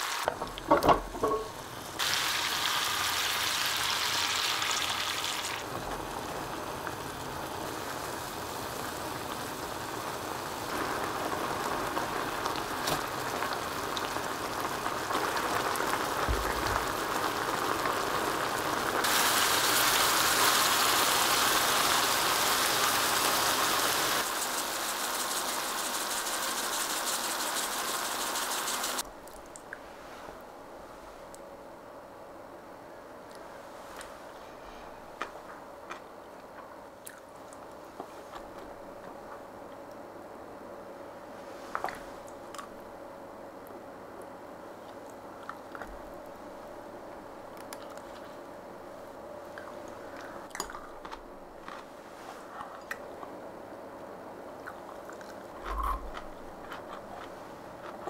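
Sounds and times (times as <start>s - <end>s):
food sizzling and bubbling in a skillet: 0.0s - 29.0s.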